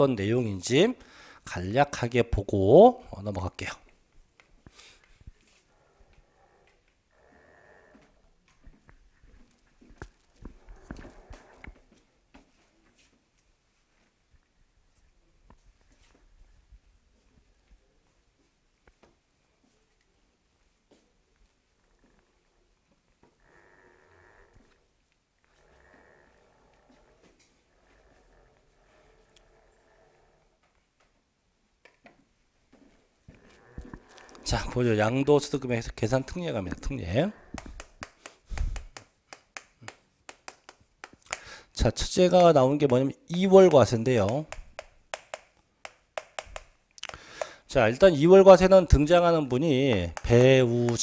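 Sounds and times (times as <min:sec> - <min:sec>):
chalk tapping on chalkboard: 0:37.6 - 0:41.5, 0:42.3 - 0:46.7, 0:49.4 - 0:51.0.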